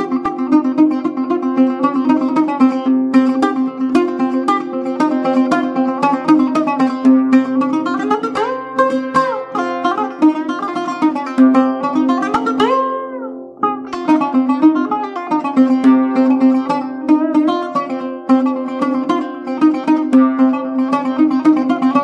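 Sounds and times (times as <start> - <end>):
oud playing plucked melody: 0.0 - 22.0.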